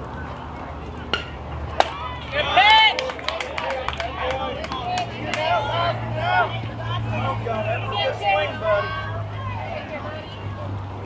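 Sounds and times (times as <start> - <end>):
softball bat crack: 1.1 - 3.5
people shouting: 1.8 - 3.1, 4.1 - 10.7.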